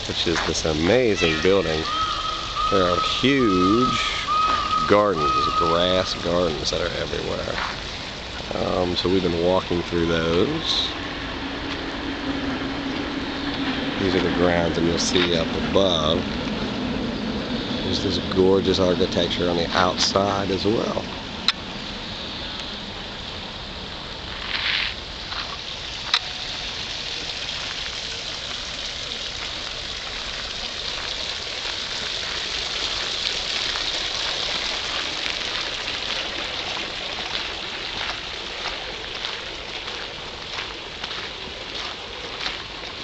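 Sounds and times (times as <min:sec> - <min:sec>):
fountain water splashing: 0:00.0 - 0:43.0.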